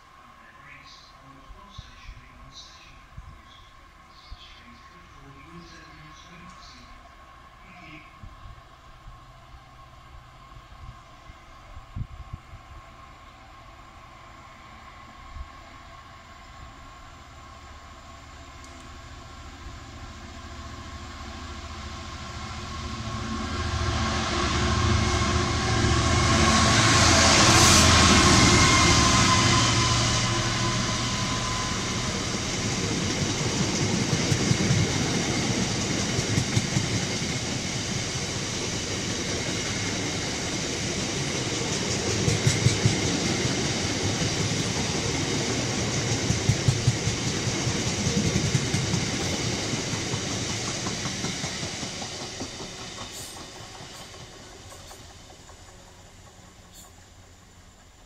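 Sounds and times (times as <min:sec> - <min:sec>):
diesel locomotive engine: 0:00.0 - 0:58.0
train wheel clicks: 0:33.0 - 0:37.3, 0:41.5 - 0:43.2, 0:45.8 - 0:58.0.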